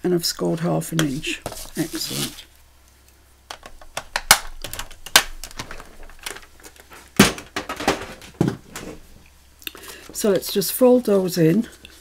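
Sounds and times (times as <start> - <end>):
plastic board knocking and clattering: 7.2 - 9.0.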